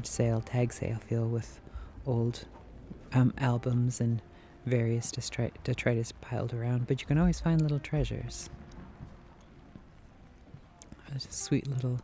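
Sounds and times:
faint steady hum: 0.0 - 12.0
soft footsteps on floor: 8.0 - 11.9.

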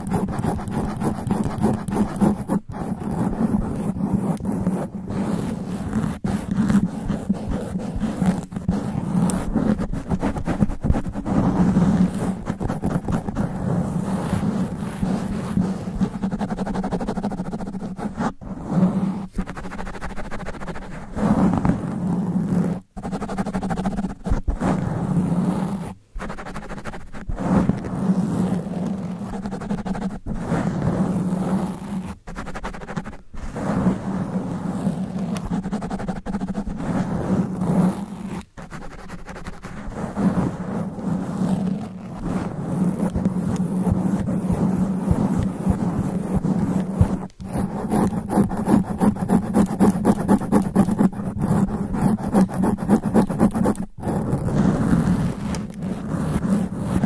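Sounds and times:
fingernails scratching microphone cover: 0.0 - 57.0.

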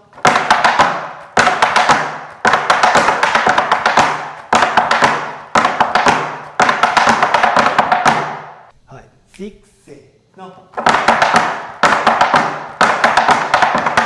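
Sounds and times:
tap shoes on wooden board: 0.1 - 8.7, 10.8 - 14.0.

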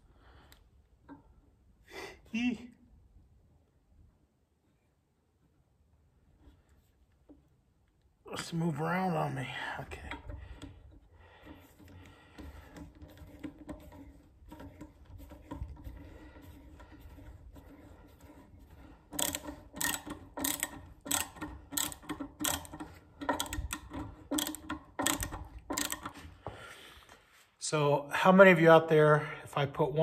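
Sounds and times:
screwdriver faint scraping: 9.6 - 27.4
screwdriver ratchet clicks: 19.2 - 26.2.

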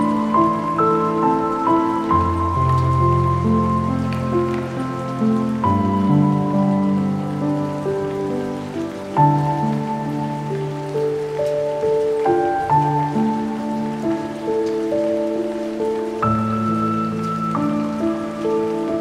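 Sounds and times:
slow melancholic piano music: 0.0 - 19.0
steady rain: 0.0 - 19.0.

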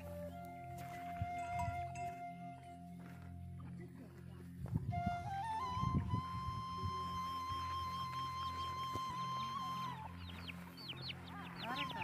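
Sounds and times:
background music with held notes: 0.0 - 12.0
chicks peeping: 9.4 - 12.0.

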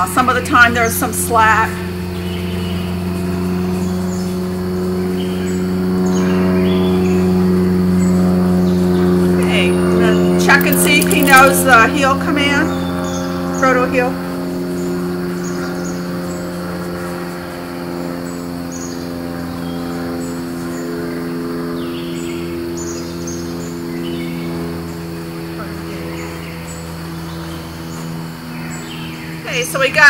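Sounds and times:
steady low hum: 0.0 - 30.0
high insect chirps: 1.9 - 16.8
bird calls: 8.1 - 13.9.

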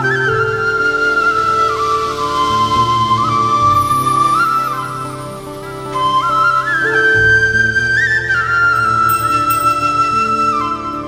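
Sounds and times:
flute melody: 0.0 - 11.0.

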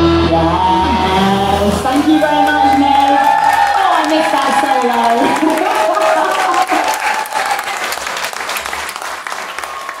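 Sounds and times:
audience applauding: 1.9 - 10.0.

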